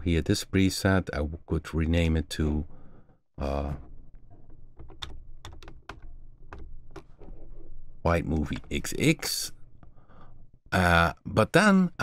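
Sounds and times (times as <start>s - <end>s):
keyboard typing: 4.4s - 7.4s.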